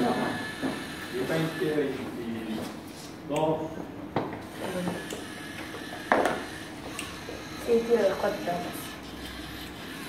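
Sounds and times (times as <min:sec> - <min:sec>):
small electric motors running: 0:00.0 - 0:03.1, 0:04.4 - 0:10.0.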